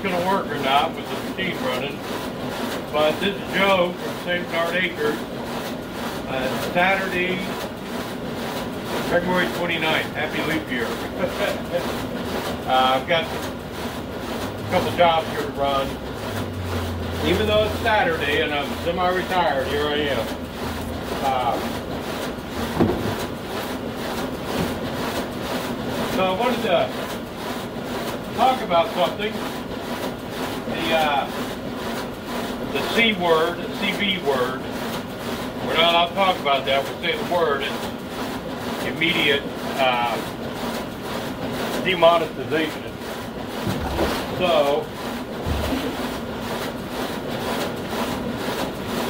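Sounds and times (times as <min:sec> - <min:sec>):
machine whirring: 0:00.0 - 0:49.0
thump: 0:22.7 - 0:23.2, 0:43.6 - 0:44.2, 0:45.4 - 0:45.8.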